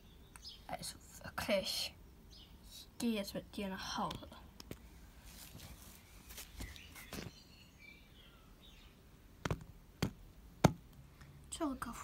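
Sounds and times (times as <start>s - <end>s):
faint outdoor background noise: 0.0s - 12.0s
plastic toy tapping on paving: 9.4s - 10.9s.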